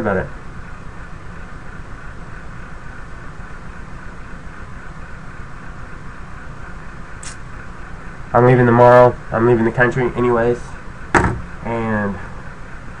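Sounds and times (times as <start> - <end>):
low hum with hiss: 0.0 - 13.0.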